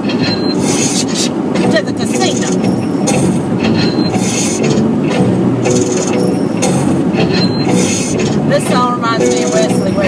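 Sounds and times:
road rumble: 0.0s - 10.0s
song on car stereo: 0.0s - 10.0s.

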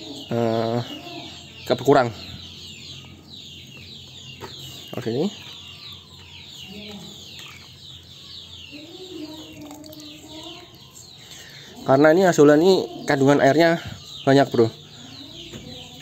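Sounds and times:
chickens clucking: 0.0s - 16.0s.

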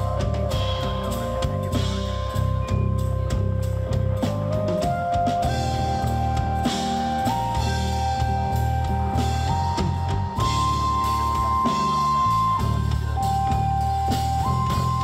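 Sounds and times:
drums: 0.0s - 15.0s
electric bass line: 0.0s - 15.0s.

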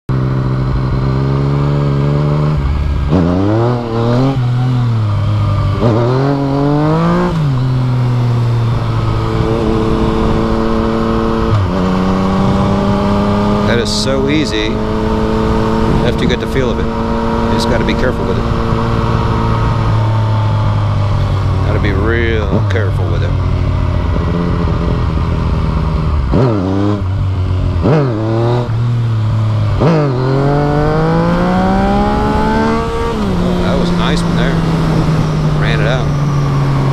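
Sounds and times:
motorcycle engine revving: 0.1s - 36.9s
wind noise: 2.5s - 22.7s, 23.4s - 36.9s.

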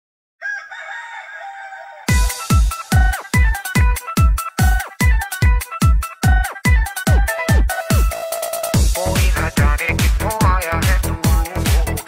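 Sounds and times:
rooster crowing: 0.4s - 2.3s
electronic dance music: 2.1s - 12.0s.

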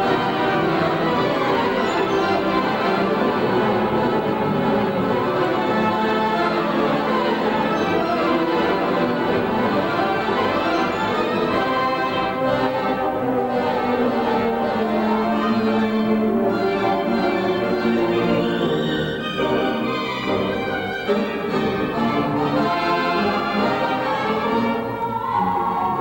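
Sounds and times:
pipe organ playing: 0.0s - 26.0s.

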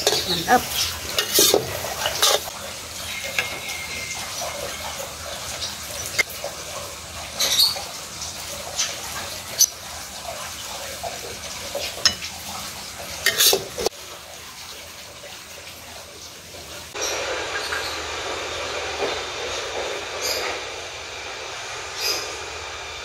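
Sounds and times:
spatula scraping ceramic plate: 0.0s - 2.5s, 13.2s - 13.9s.

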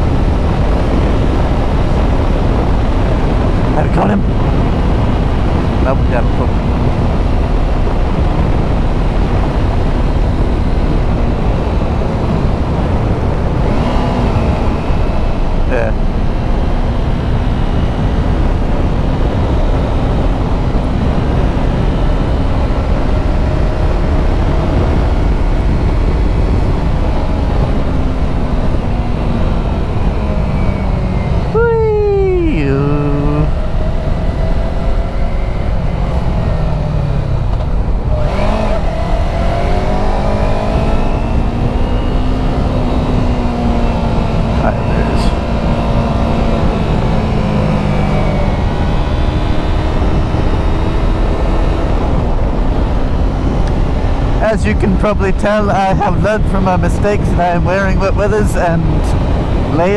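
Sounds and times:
wind rush on microphone: 0.0s - 59.9s.

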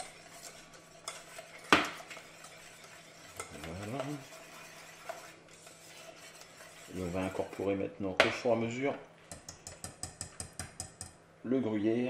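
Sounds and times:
whisk clicking against metal pan: 0.0s - 8.5s, 9.3s - 11.2s.

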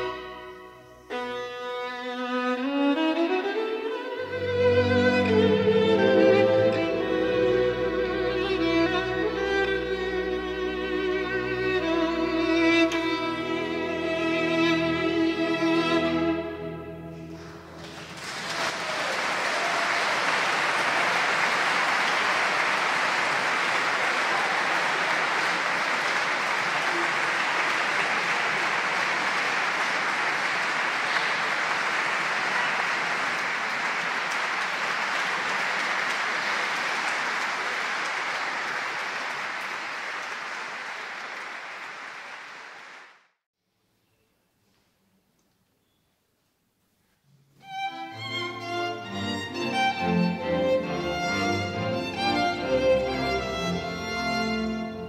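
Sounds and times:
audience applauding: 17.3s - 43.3s.

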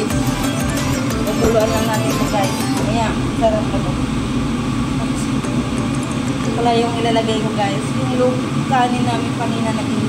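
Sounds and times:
kitchen appliance rumbling: 1.2s - 8.6s.

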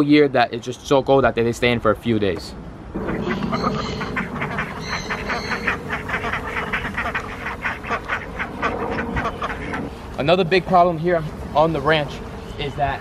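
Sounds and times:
ducks quacking: 3.0s - 10.4s.

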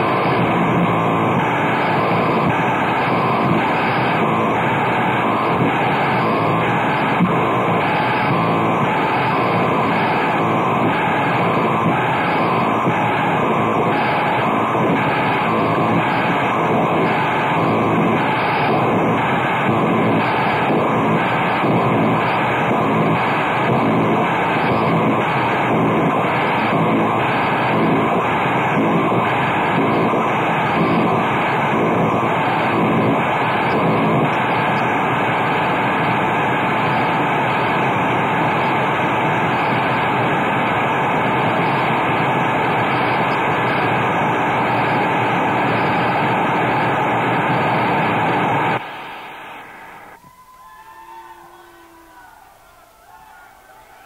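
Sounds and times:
harsh industrial noise music: 0.0s - 39.1s.

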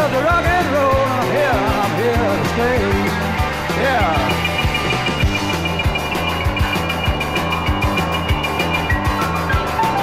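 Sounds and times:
rock and roll band playing: 0.0s - 10.0s
steady drum beat: 0.4s - 10.0s.

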